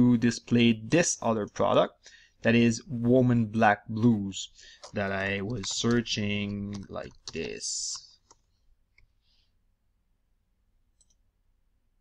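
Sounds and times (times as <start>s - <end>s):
faint computer clicks: 4.7s - 9.1s.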